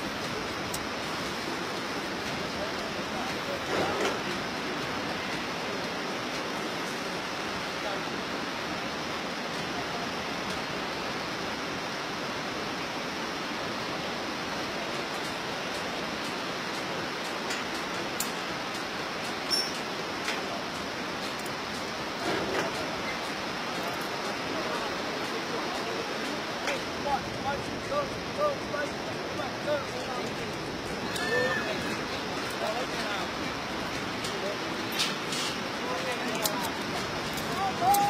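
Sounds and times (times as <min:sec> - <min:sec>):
river rushing: 0:00.0 - 0:38.0.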